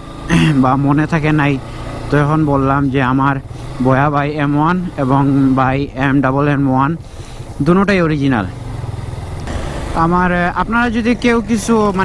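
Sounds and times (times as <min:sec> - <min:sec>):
motorcycle engine rumbling: 0:00.0 - 0:12.0
person speaking: 0:00.3 - 0:07.0, 0:09.8 - 0:12.0.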